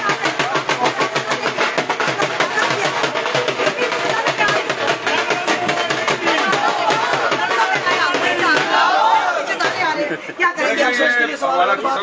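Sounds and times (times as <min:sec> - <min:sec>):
dhol drum beating fast: 0:00.0 - 0:10.5
crowd voices: 0:00.0 - 0:12.0.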